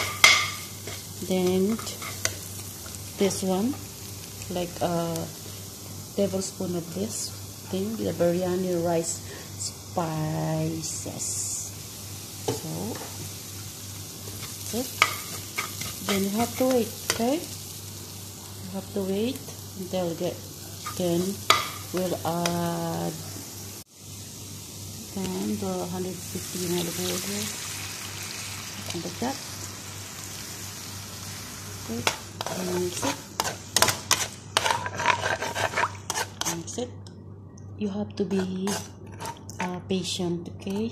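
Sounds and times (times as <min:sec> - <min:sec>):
metal spoon scraping a pan: 0:00.0 - 0:03.0, 0:14.4 - 0:17.3, 0:20.7 - 0:22.2, 0:31.9 - 0:36.8, 0:38.2 - 0:39.7
onions sizzling in a wok: 0:00.0 - 0:36.8.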